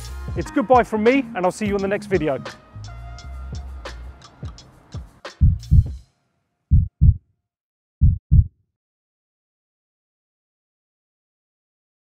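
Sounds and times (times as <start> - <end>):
deep heartbeat-like thumps: 5.4 - 6.0, 6.7 - 7.2, 8.0 - 8.5.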